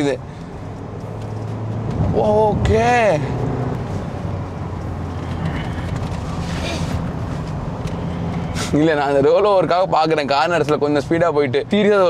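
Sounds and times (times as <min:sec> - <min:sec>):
road and engine noise in car: 0:00.0 - 0:12.0.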